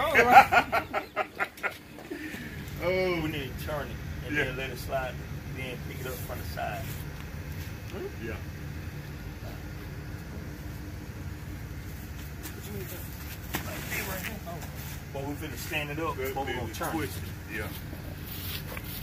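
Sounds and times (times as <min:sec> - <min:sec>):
vehicle engine idling: 0:00.0 - 0:19.0.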